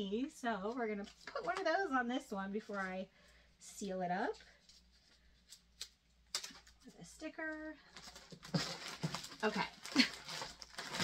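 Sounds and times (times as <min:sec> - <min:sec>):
plastic mailer crackling: 0:08.0 - 0:11.0.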